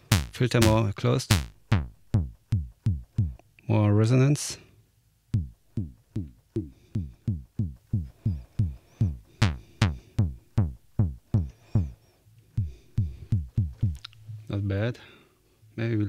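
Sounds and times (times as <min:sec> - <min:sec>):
synthesizer kick drum: 0:00.0 - 0:03.4, 0:05.4 - 0:11.9, 0:12.6 - 0:14.0.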